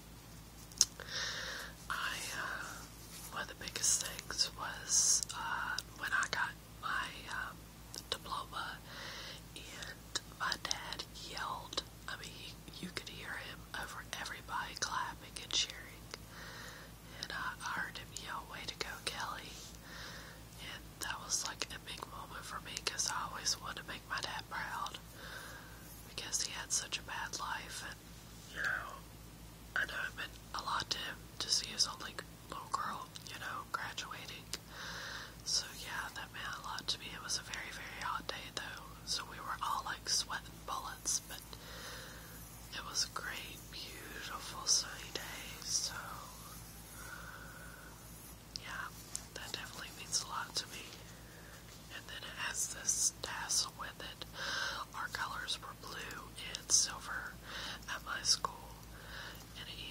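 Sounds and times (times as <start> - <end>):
faint low hum: 0.0 - 59.9
woman whispering: 0.8 - 16.3, 17.1 - 19.8, 20.5 - 25.1, 25.9 - 29.1, 29.7 - 34.7, 35.4 - 41.8, 42.4 - 51.1, 51.8 - 59.9.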